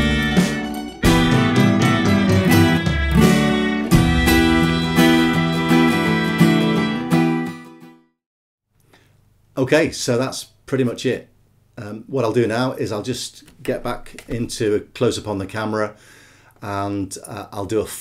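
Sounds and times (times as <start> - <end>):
acoustic guitar strumming chords: 0.0 - 8.0
recorded instrumental music: 0.0 - 8.0.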